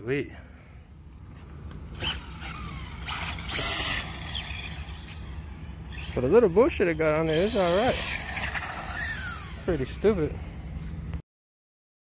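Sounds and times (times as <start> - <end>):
steady low rumble: 0.0 - 11.2
motor and tyre noise: 1.1 - 11.2
rc car motor whine: 1.9 - 10.4.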